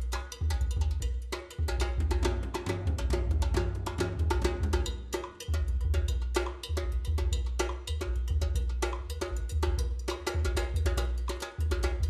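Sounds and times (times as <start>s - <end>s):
drum kit fast groove: 0.0s - 12.0s.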